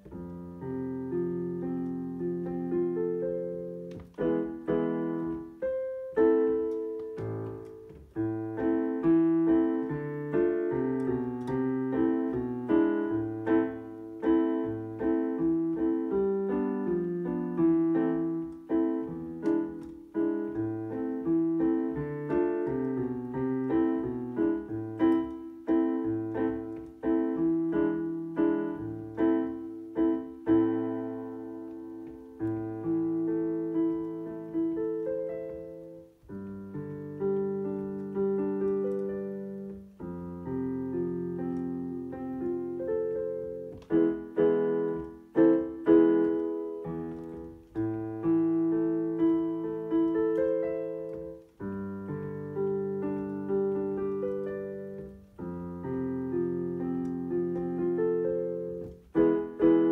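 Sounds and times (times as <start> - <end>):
solo piano: 0.0 - 59.9.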